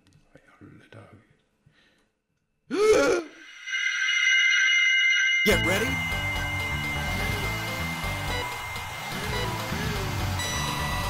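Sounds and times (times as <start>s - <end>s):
high-pitched electronic chord: 3.4s - 11.0s.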